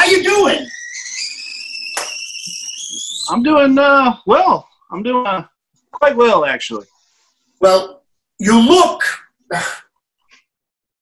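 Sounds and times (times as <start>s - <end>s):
kettle whistling: 0.0s - 4.4s.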